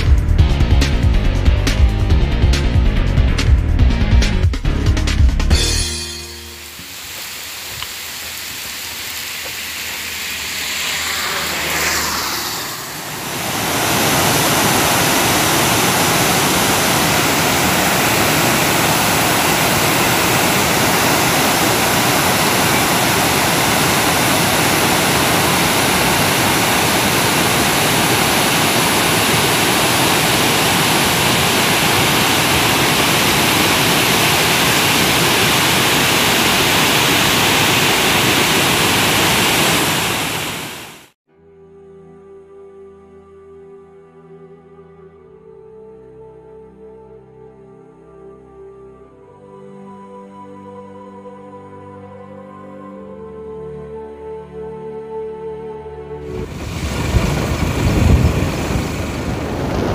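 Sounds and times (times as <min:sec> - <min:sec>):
water rushing over spillway: 0:06.7 - 0:41.2, 0:56.3 - 0:59.9.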